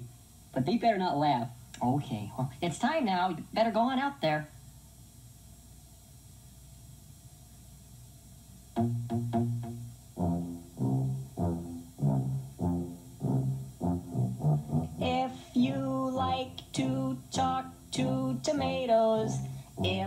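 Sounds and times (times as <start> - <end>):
tuba playing short low notes: 8.8 - 20.0.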